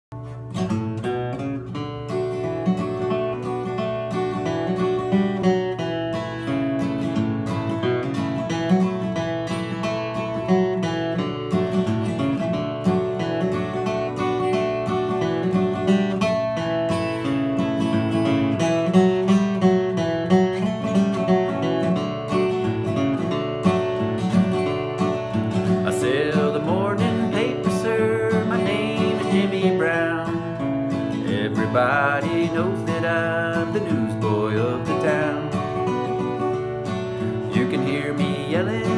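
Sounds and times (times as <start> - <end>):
acoustic guitar playing: 0.1 - 38.9
man singing: 25.6 - 36.5, 37.2 - 38.9.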